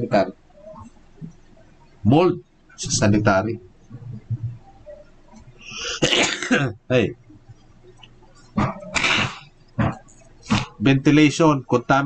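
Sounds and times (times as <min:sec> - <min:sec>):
man coughing: 0:05.7 - 0:06.8, 0:08.9 - 0:09.4.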